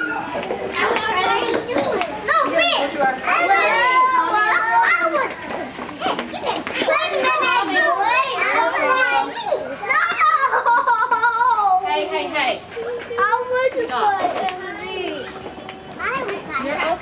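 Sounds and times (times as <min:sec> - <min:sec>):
young children chattering: 0:00.0 - 0:17.0.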